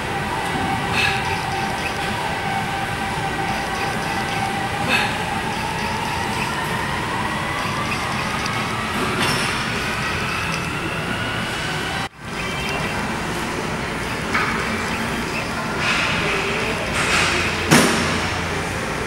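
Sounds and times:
gym background noise: 0:00.0 - 0:19.0.

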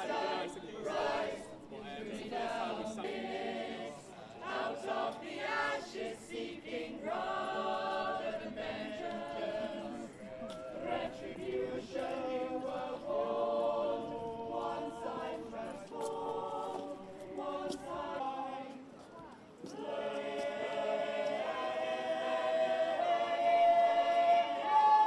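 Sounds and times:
choir singing: 0:00.0 - 0:19.0, 0:19.6 - 0:25.0.

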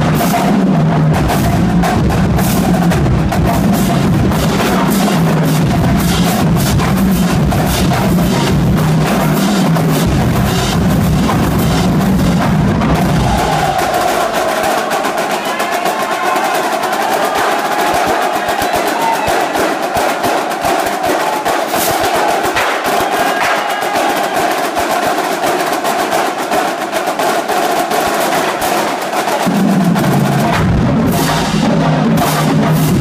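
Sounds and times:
bass drums: 0:00.0 - 0:15.4, 0:29.5 - 0:33.0
marching snare drums: 0:00.0 - 0:33.0.

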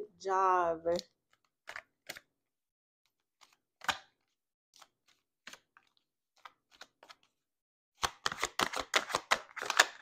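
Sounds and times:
cards clicking and tapping: 0:00.9 - 0:02.3, 0:03.1 - 0:07.4, 0:08.0 - 0:10.0.

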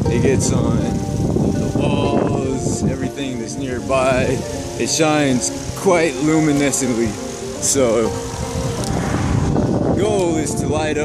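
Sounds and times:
road and traffic rumbling: 0:00.0 - 0:11.0.

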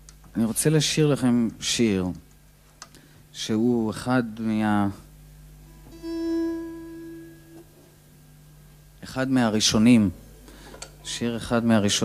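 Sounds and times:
ringing instrument note: 0:05.7 - 0:07.7.

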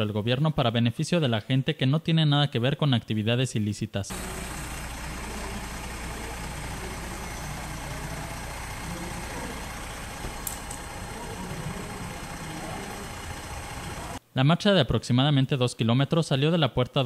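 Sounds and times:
diesel trucks idling: 0:04.1 - 0:14.2.

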